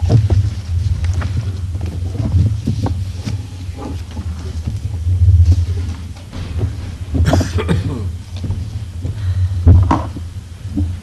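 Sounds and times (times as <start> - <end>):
low uneven rumble: 0.0 - 11.0.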